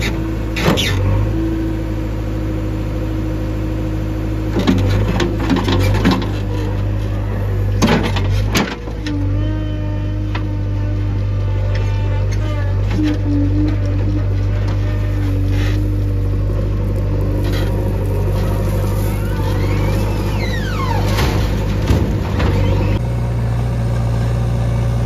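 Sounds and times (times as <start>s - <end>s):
diesel engine running: 0.0s - 25.0s
hydraulic whine: 4.5s - 25.0s.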